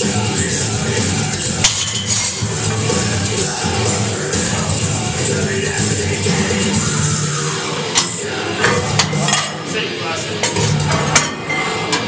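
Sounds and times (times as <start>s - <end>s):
rock music: 0.0s - 12.0s.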